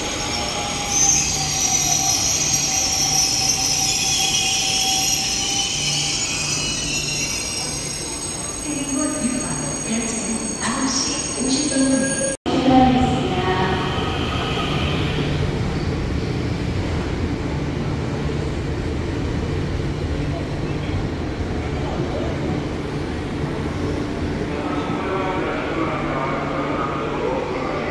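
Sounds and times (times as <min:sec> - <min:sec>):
electric train rumbling past: 0:00.0 - 0:27.9.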